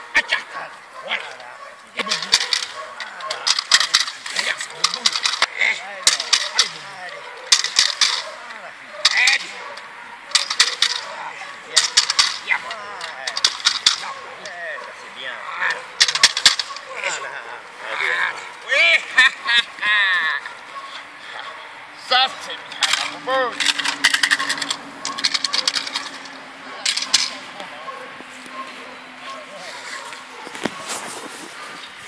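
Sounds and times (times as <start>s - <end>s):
stick clattering cracks: 1.2s - 15.0s, 15.6s - 17.1s, 22.4s - 28.6s.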